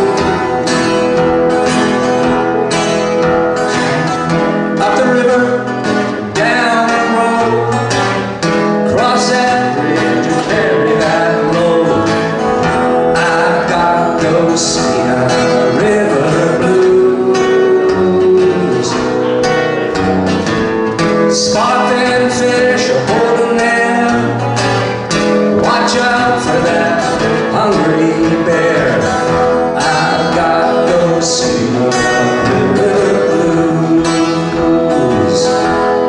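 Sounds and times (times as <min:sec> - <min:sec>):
acoustic guitar blues: 0:00.0 - 0:36.0
man singing: 0:00.0 - 0:36.0.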